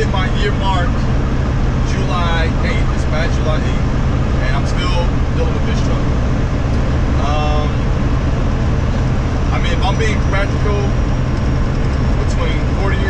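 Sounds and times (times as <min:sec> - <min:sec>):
road noise: 0:00.0 - 0:13.0
truck engine drone: 0:00.0 - 0:13.0.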